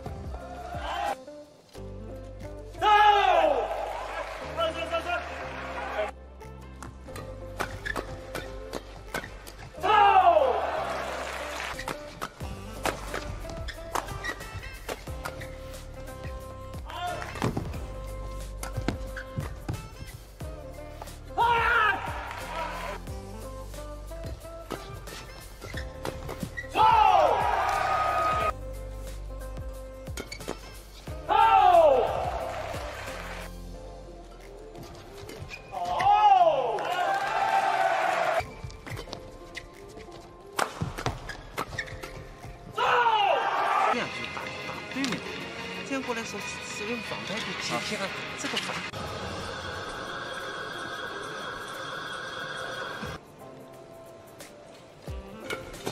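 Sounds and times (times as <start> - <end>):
low background music: 0.0 - 55.9
shoe squeaks: 7.2 - 9.6, 11.8 - 20.4, 24.2 - 26.9, 30.1 - 31.0, 34.8 - 36.0, 38.4 - 42.7
players shouting: 9.8 - 11.6, 21.4 - 23.0, 26.7 - 28.5, 31.2 - 33.4, 35.7 - 38.4, 42.8 - 44.0
racket striking shuttlecock: 11.8 - 15.4.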